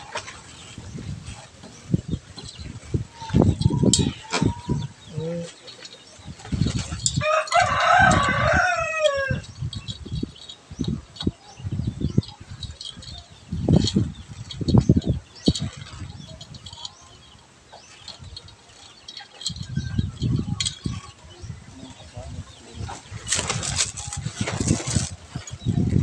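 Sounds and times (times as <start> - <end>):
rooster crowing: 7.2 - 9.4.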